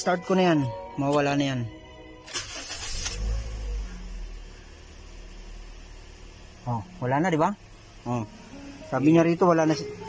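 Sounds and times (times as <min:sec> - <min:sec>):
car engine starting and idling: 0:00.5 - 0:10.0.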